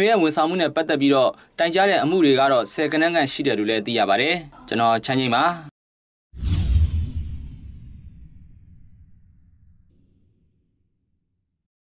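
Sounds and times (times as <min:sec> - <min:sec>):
whoosh: 0:06.4 - 0:11.4
deep low boom: 0:06.4 - 0:11.6.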